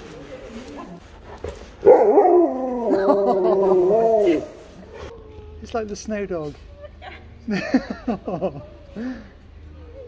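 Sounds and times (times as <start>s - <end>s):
husky howling: 1.8s - 4.7s.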